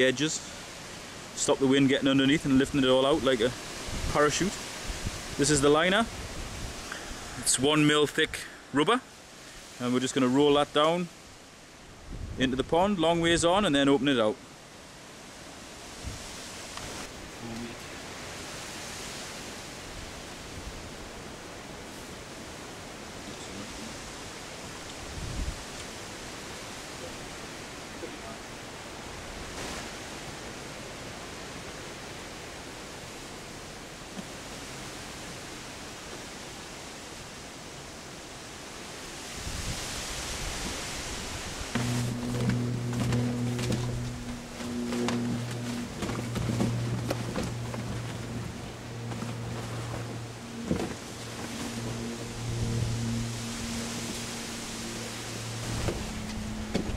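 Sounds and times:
wind on microphone: 3.2 - 7.7, 12.0 - 13.6, 15.9 - 21.2, 24.8 - 25.8, 39.2 - 56.9
steady low hum: 41.2 - 56.9.

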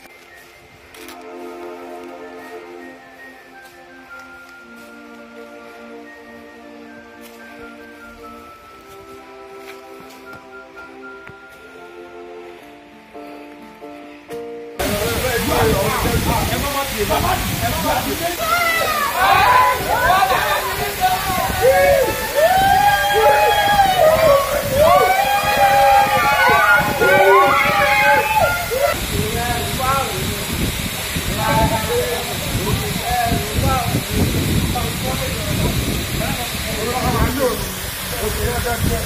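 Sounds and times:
drawn-out voices with sliding pitch: 14.8 - 39.0
waterfall rushing and splashing: 14.8 - 39.0.

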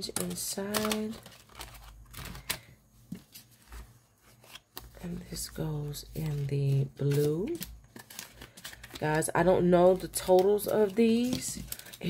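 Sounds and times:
paper envelope and bills rustling: 0.0 - 12.0.

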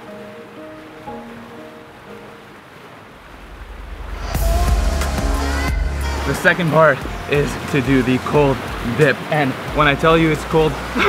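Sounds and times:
soft piano music: 0.0 - 11.0
waterfall pouring into pool: 3.1 - 11.0.

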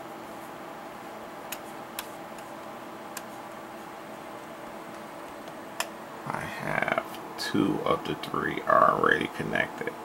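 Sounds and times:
room tone hum and hiss: 0.0 - 10.0
computer mouse clicks: 1.5 - 3.3.

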